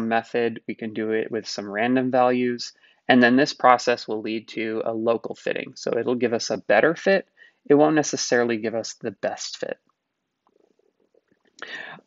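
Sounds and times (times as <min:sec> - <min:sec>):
man breathing in: 0:02.8 - 0:03.1, 0:07.4 - 0:07.7, 0:11.6 - 0:12.0.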